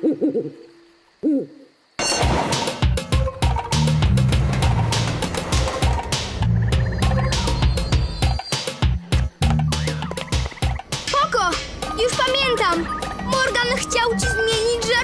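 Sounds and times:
cartoon owl hoots: 0.0 - 1.7
rapid percussive music: 2.2 - 15.0.

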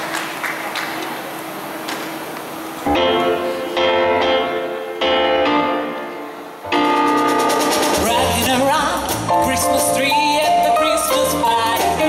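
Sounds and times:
keyboard chords: 2.8 - 12.0.

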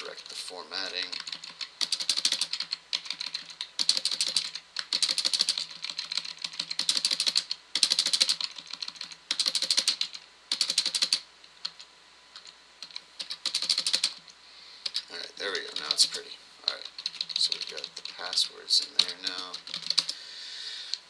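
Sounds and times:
typing on computer keyboard: 1.0 - 20.2.

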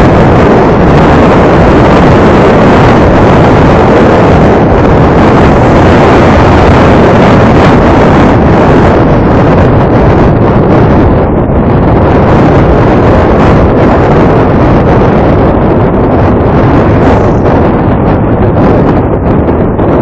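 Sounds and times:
road noise: 0.0 - 20.0
wind rush on microphone: 0.0 - 20.0.

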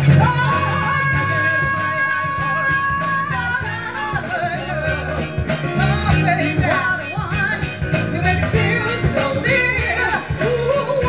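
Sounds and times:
bass: 0.0 - 11.0
drums: 0.0 - 11.0
people singing: 0.0 - 11.0.

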